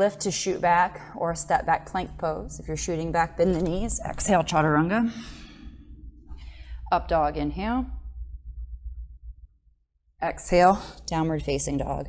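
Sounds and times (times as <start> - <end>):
low steady hum: 0.0 - 12.0
woman breathing: 5.0 - 6.9.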